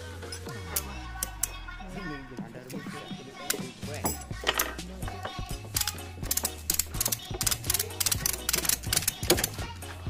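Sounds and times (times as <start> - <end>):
ratchet strap clicking: 5.8 - 9.6.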